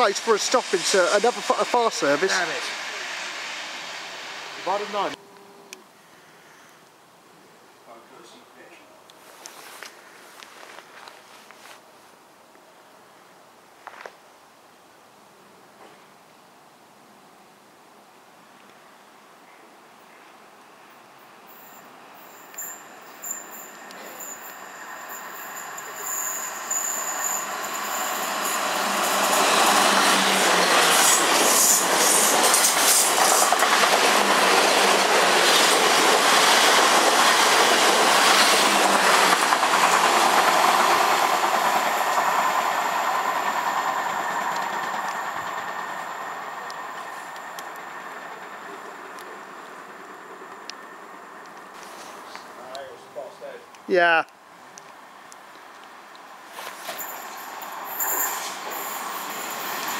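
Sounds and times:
passing train rush: 0:00.0 - 0:06.4, 0:20.8 - 0:53.7, 0:54.6 - 0:59.9
high ringing from rails: 0:21.5 - 0:33.0, 0:56.8 - 0:59.9
wheels clicking over rail joints: 0:25.7 - 0:47.9.

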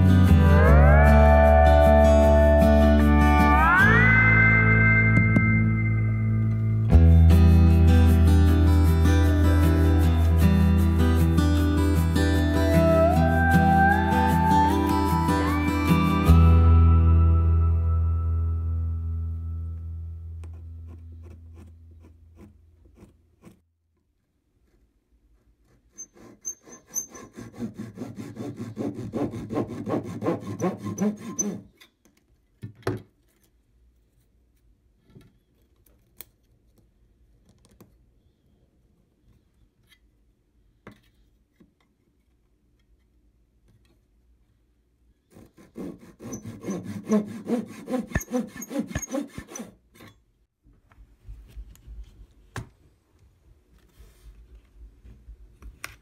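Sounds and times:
background music: 0:00.0 - 0:19.7
saw rasping through wood: 0:25.6 - 0:31.7, 0:45.3 - 0:49.8.

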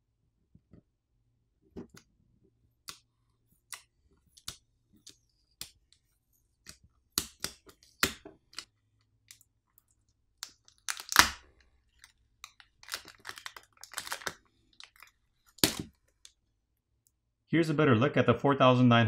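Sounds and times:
plastic and film crackling: 0:10.4 - 0:16.4.

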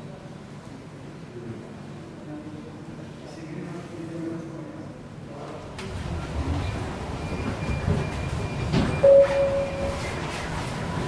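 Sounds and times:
brief steady tone: 0:07.6 - 0:10.2.

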